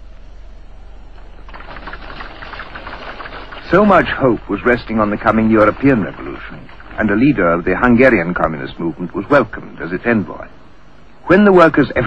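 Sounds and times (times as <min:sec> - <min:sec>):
low steady hum: 0:00.0 - 0:12.0
rapid mechanical clattering: 0:01.0 - 0:10.5.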